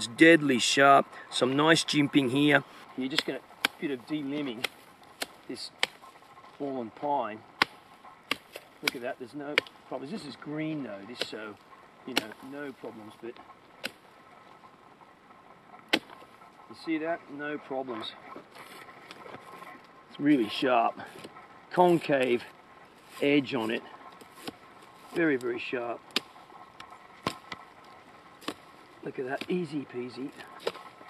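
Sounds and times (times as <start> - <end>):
blade chopping pine branch: 3.1 - 6.0, 7.6 - 9.8, 12.1 - 12.5, 13.8 - 14.0, 15.9 - 16.2, 26.1 - 26.4, 27.2 - 27.6, 28.4 - 28.7, 30.6 - 30.9.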